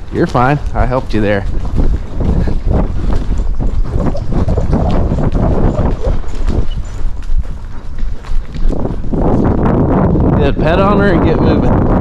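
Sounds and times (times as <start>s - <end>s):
horse hoofbeats on dirt: 0.0s - 12.0s
wind buffeting microphone: 0.0s - 12.0s.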